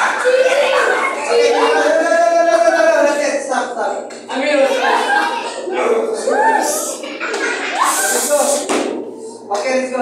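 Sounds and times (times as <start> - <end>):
children shouting: 0.0 - 2.9, 7.6 - 8.4.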